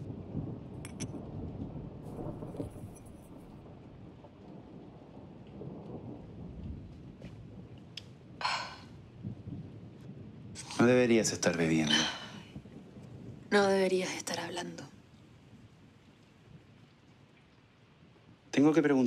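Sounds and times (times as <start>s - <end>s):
low steady rumbling: 0.0s - 4.0s.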